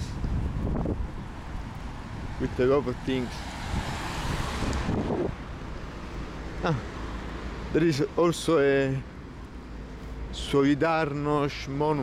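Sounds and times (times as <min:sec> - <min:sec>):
wind on microphone: 0:00.0 - 0:02.4, 0:03.4 - 0:05.8
low traffic rumble: 0:00.0 - 0:12.0.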